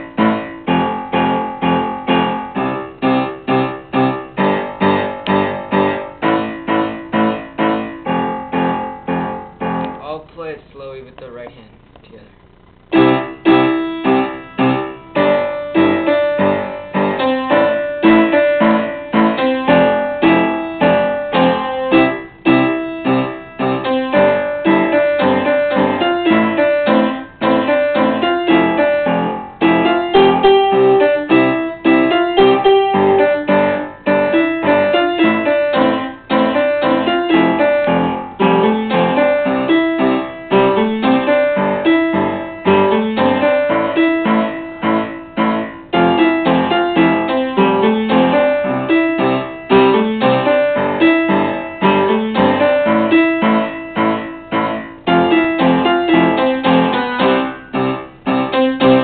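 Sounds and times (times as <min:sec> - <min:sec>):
piano melody over chords: 0:00.0 - 0:11.5, 0:12.6 - 0:59.0.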